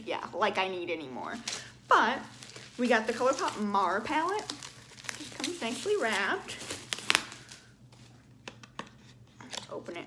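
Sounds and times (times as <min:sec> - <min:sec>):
bubble wrap crinkling: 0:01.3 - 0:08.4.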